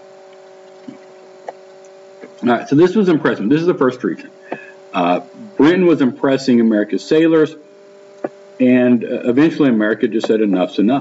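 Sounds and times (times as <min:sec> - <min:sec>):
faint steady tones: 0:00.0 - 0:11.0
light hiss: 0:00.0 - 0:11.0
small clicks: 0:00.2 - 0:02.4, 0:08.0 - 0:08.6.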